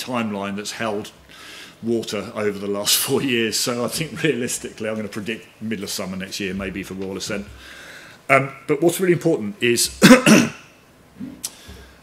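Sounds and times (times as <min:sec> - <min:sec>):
man clearing his throat: 0:10.0 - 0:10.7.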